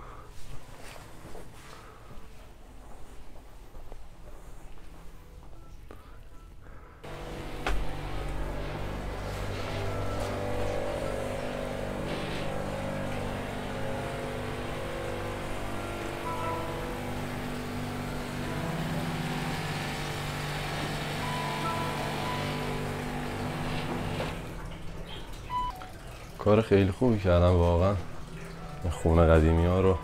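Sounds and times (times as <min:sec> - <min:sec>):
background music of held chords: 0:07.0 - 0:24.4.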